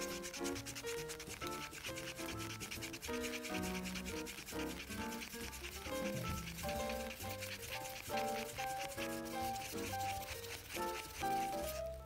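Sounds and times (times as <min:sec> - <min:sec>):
light melodic background music: 0:00.0 - 0:12.0
stick scraping paint in cup: 0:00.0 - 0:12.0.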